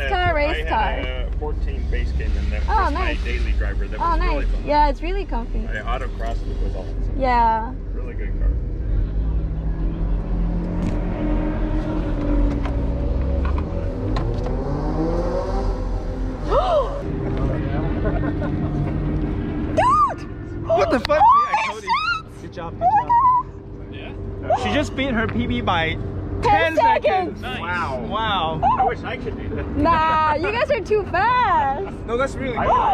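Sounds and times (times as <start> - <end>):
voices: 0.0 - 10.4, 16.5 - 32.9
car engine drone from inside cabin: 0.0 - 32.9.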